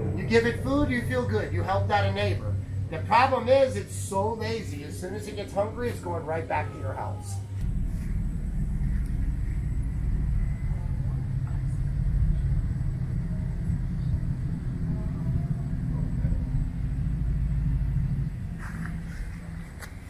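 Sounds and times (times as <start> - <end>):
low steady rumble: 0.0 - 20.0.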